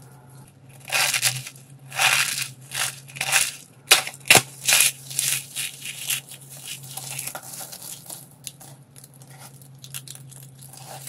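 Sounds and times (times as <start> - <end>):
cardboard box crunching: 0.8 - 8.3.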